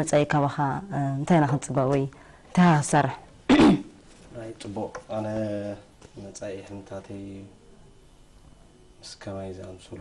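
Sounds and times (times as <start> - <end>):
studio conversation: 0.0 - 10.0.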